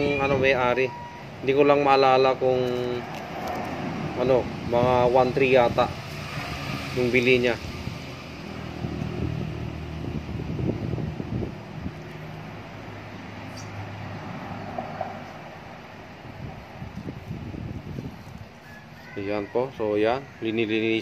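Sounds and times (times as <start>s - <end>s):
low engine hum: 2.3s - 18.6s.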